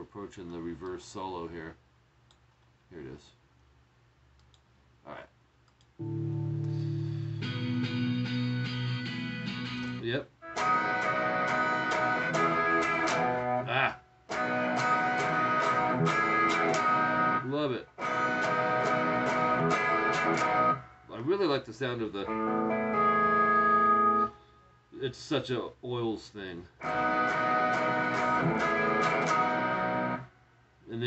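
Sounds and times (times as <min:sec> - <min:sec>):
electric guitar strumming chords: 0:06.0 - 0:21.1, 0:22.2 - 0:24.4, 0:26.8 - 0:30.3.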